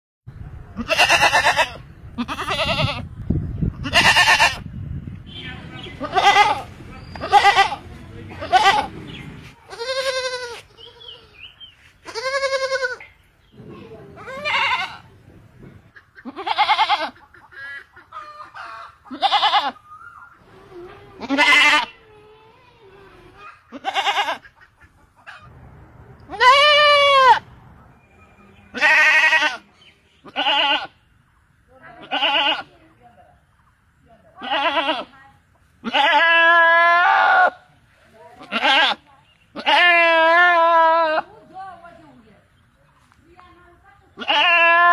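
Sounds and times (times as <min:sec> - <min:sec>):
goats bleating: 0:00.8 - 0:03.0, 0:03.8 - 0:04.6, 0:06.0 - 0:09.0, 0:09.7 - 0:11.3, 0:12.0 - 0:13.1, 0:14.2 - 0:15.1, 0:16.2 - 0:17.2, 0:19.1 - 0:19.8, 0:21.2 - 0:22.1, 0:23.7 - 0:24.6, 0:26.3 - 0:27.4, 0:28.7 - 0:31.0, 0:31.9 - 0:32.7, 0:34.4 - 0:35.1, 0:35.8 - 0:37.7, 0:38.4 - 0:41.3, 0:44.2 - 0:44.9.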